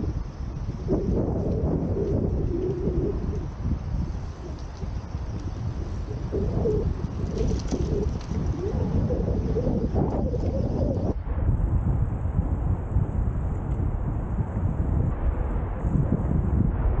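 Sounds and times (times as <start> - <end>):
wavering low hum: 0.0 - 17.0
wind rumbling on microphone: 0.0 - 17.0.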